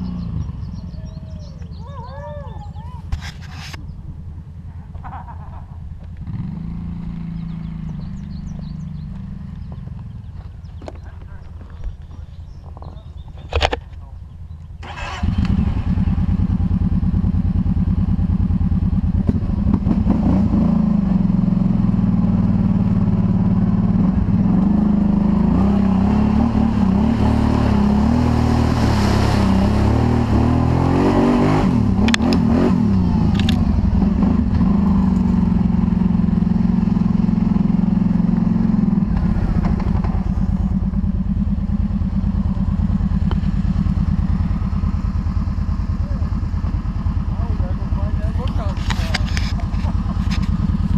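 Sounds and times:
atv engine running: 0:00.0 - 0:50.9.

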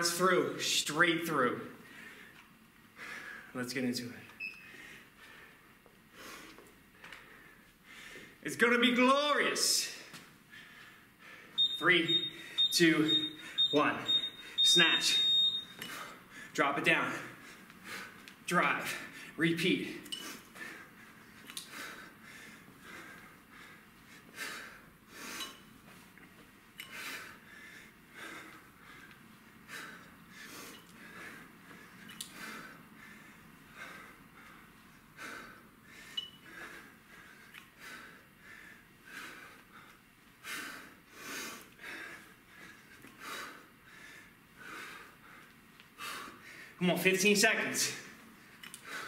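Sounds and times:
man breathing hard: 0:01.8 - 0:03.6, 0:04.6 - 0:08.4, 0:10.4 - 0:11.7, 0:12.3 - 0:19.4, 0:20.1 - 0:25.7, 0:26.8 - 0:46.8, 0:48.0 - 0:49.0.

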